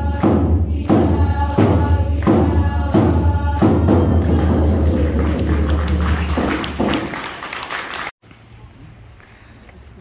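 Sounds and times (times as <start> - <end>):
audience applauding: 4.7 - 8.2.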